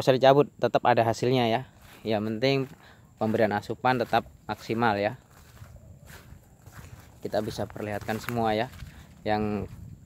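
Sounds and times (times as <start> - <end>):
man's voice: 0.0 - 5.2, 7.2 - 9.9
faint footsteps on soil: 1.0 - 10.0.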